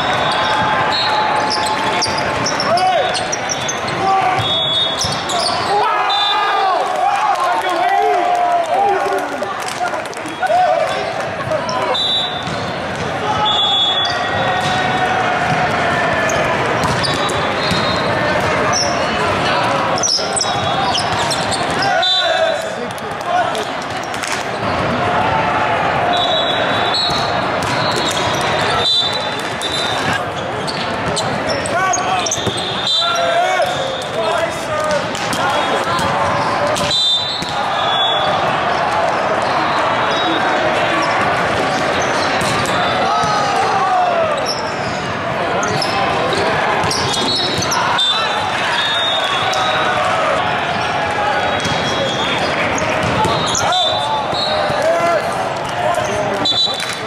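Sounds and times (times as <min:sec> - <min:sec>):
crowd of voices: 0:00.0 - 0:57.0
whistle blasts: 0:03.5 - 0:06.5, 0:11.9 - 0:12.4, 0:13.4 - 0:14.3, 0:26.1 - 0:30.1, 0:32.3 - 0:34.1, 0:36.8 - 0:38.3, 0:48.0 - 0:49.9, 0:56.4 - 0:57.0
volleyballs thudding: 0:14.4 - 0:18.7, 0:27.1 - 0:30.2, 0:34.8 - 0:37.7, 0:41.3 - 0:43.5, 0:53.0 - 0:53.5.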